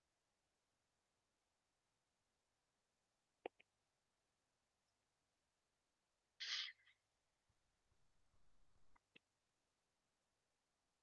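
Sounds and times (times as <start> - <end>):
person's short sharp breath: 6.4 - 6.9.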